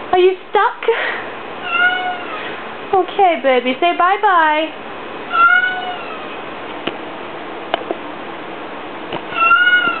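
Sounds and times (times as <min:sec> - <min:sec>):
cat meowing: 0:01.6 - 0:02.5, 0:05.3 - 0:06.4, 0:09.3 - 0:10.0.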